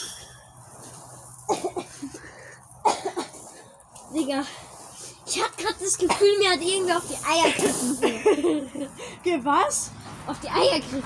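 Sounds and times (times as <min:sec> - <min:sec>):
boy coughing: 0:01.5 - 0:02.2, 0:02.8 - 0:03.4, 0:06.0 - 0:06.6, 0:07.3 - 0:08.6.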